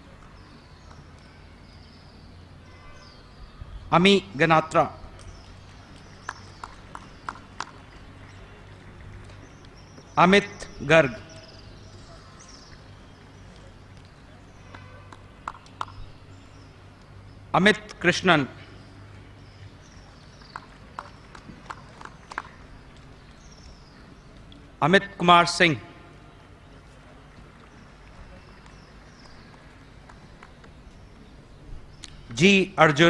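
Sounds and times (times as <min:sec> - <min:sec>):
faint sharp clicks: 0:32.0 - 0:32.2.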